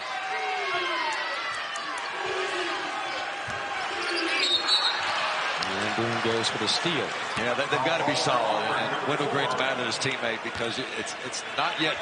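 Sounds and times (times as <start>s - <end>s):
crowd murmur and shouts: 0.0s - 12.0s.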